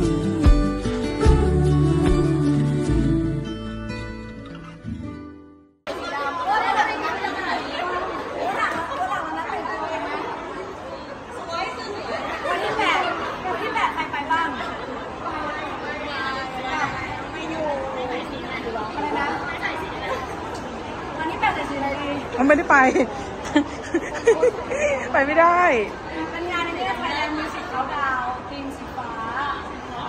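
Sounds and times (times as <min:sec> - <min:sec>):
people chattering: 0:05.9 - 0:30.0.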